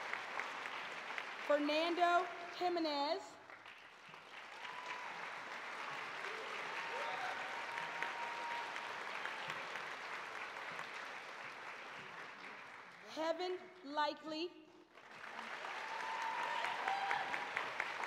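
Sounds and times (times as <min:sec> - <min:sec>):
audience applauding: 0:00.0 - 0:02.5, 0:03.5 - 0:13.1, 0:14.9 - 0:18.0.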